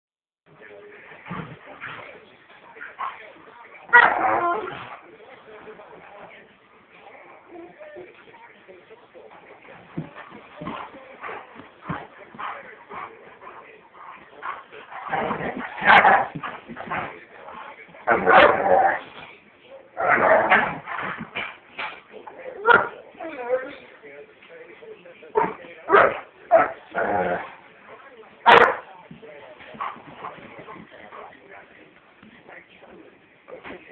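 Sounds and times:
dogs growling in play: 0:01.1 - 0:02.2, 0:03.8 - 0:05.1, 0:09.8 - 0:19.3, 0:19.9 - 0:23.8, 0:25.4 - 0:27.8, 0:29.6 - 0:31.3
dogs barking: 0:14.4 - 0:17.1, 0:18.1 - 0:18.9, 0:25.4 - 0:27.4, 0:28.4 - 0:28.9.

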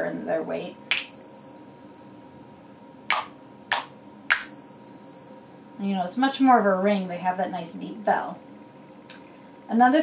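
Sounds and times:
finger cymbals striking: 0:00.9 - 0:05.9.

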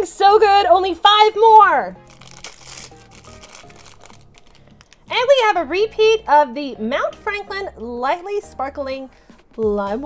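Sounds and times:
faint background music: 0:00.0 - 0:10.0
plastic packet crinkling: 0:02.0 - 0:05.3.

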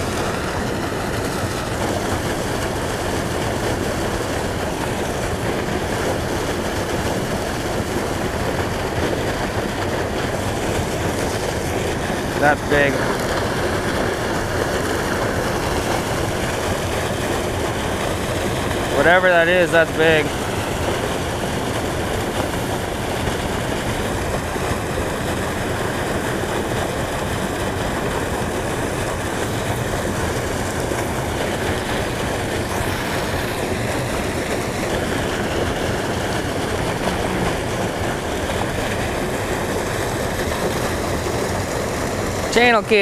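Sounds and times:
water rushing over rocks: 0:00.0 - 0:43.0.

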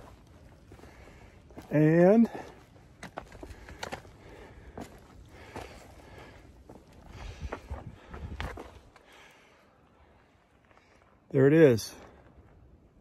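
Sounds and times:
footsteps on leafy dirt trail: 0:00.0 - 0:12.9.

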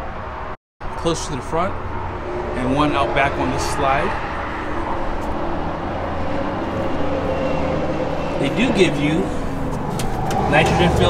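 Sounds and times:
low motor vehicle rumble: 0:00.8 - 0:11.0.

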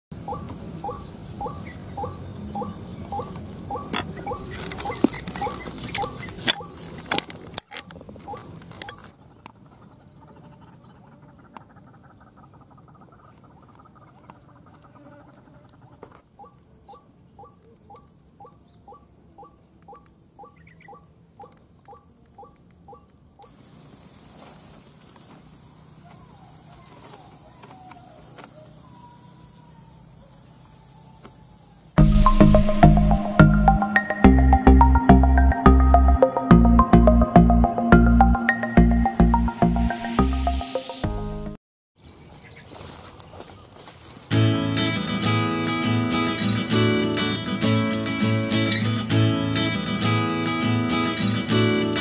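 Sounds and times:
steady high whine: 0:31.2 - 0:41.6.

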